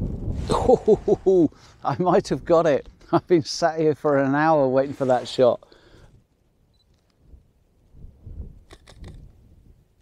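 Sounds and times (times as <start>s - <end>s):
camera shutter clicks: 8.7s - 9.2s.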